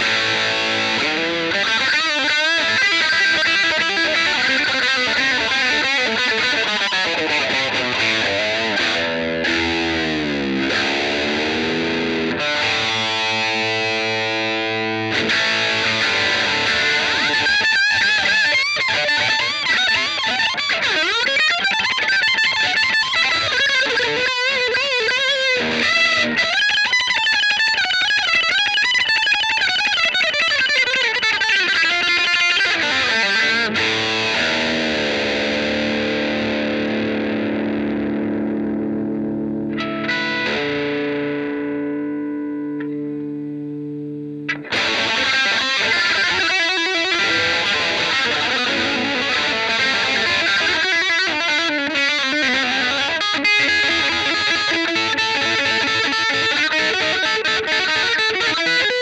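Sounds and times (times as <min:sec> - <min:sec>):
electric guitar playing: 0:00.0 - 0:59.0.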